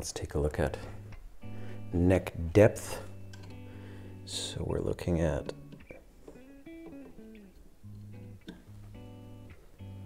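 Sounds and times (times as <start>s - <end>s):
electric guitar playing: 0.4s - 10.0s.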